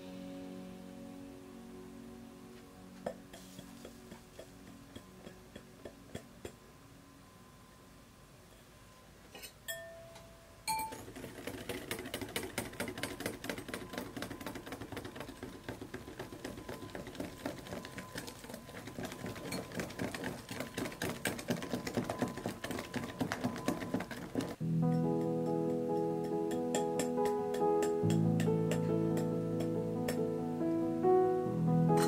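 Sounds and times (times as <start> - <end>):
music: 0.0 - 32.0
glass clinking on glass: 9.3 - 11.0.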